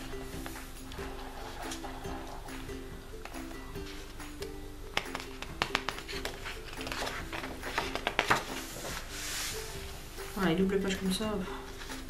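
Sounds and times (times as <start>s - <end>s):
paper pages rustling: 0.0s - 2.6s, 5.0s - 9.7s
light background music: 0.0s - 12.0s.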